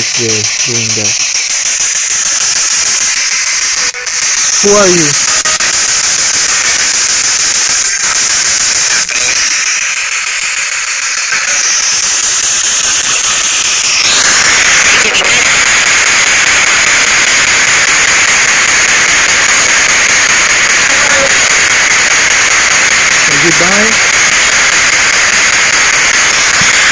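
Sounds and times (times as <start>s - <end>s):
radio static hiss: 0.0s - 26.9s.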